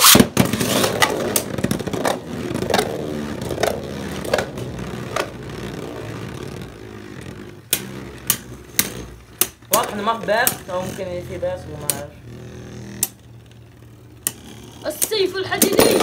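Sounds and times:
spinning tops whirring: 0.0 - 16.0.

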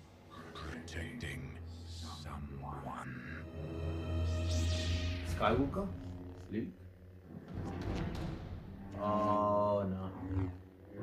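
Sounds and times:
orchestral film music: 0.7 - 6.0
lightsaber hum and swishes: 4.0 - 11.0.

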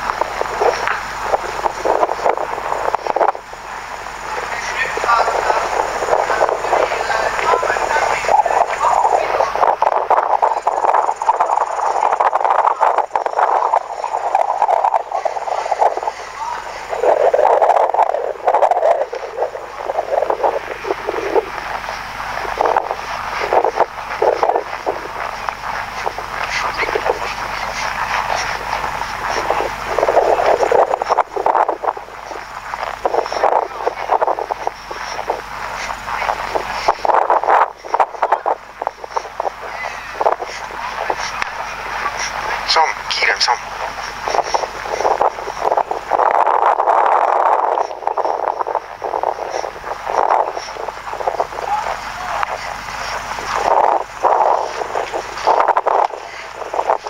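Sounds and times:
muffled rushing noise: 0.0 - 57.0.

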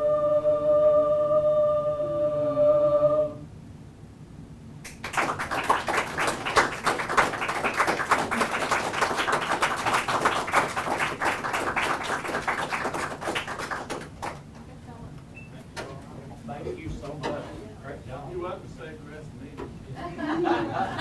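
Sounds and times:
small group applauding: 4.8 - 14.6.

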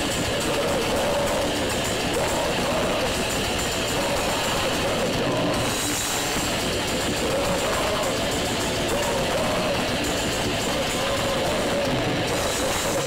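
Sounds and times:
death metal band playing live: 0.0 - 13.0
wavering vocals: 0.0 - 13.0.

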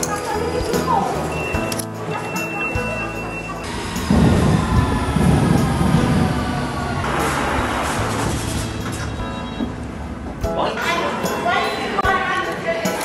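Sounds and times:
train rumble: 3.7 - 10.6.

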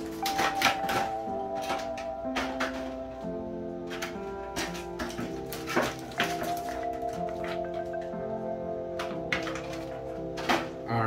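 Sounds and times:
packaging taps and clicks: 0.0 - 3.2, 3.9 - 8.1, 9.0 - 10.8
background music: 0.0 - 11.0.

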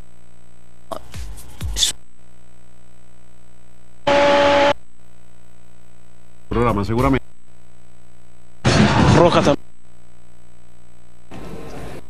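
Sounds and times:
steady hum: 0.0 - 12.0
noisy tv sound with steady tones: 0.1 - 12.0.

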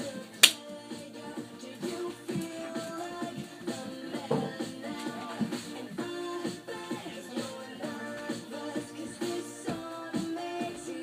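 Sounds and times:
music playing: 0.0 - 11.0
sharp snap: 0.4 - 0.7.

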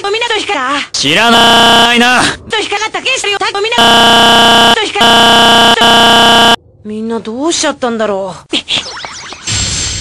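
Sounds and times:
loud electronic buzzing tone: 1.3 - 2.0, 3.8 - 6.6.

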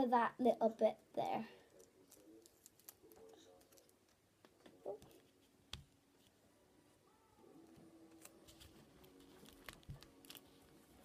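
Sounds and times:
paper rustling: 7.8 - 11.0.

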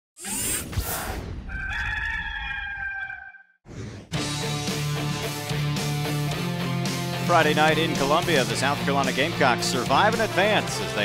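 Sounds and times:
rooster crowing: 1.5 - 3.6.

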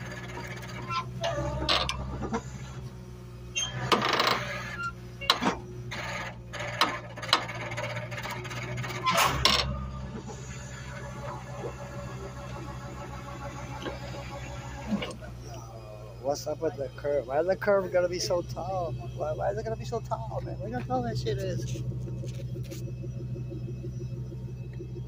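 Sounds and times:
vehicle engine idling: 0.0 - 25.0.

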